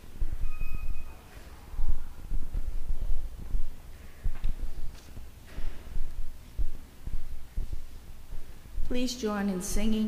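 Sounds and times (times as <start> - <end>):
low dull thumps: 0.0 - 1.0, 1.8 - 10.0
faint hum: 0.0 - 10.0.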